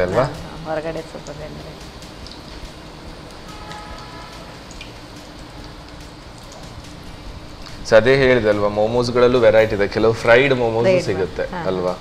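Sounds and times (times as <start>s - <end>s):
food sizzling in hot oil: 0.0s - 12.0s.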